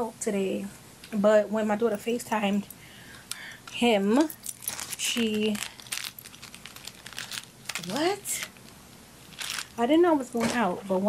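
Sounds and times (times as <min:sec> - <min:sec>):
handling clicks and rustles: 0:03.6 - 0:09.8.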